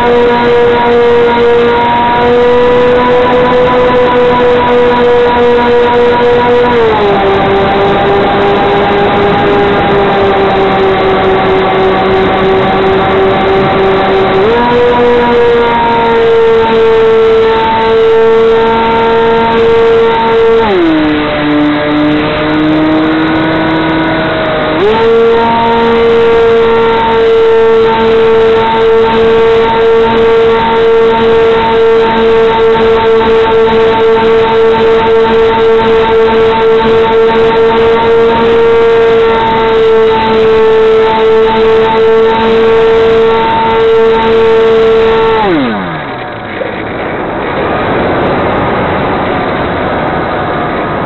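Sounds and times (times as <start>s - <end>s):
model airplane motor whining: 0.0s - 47.0s.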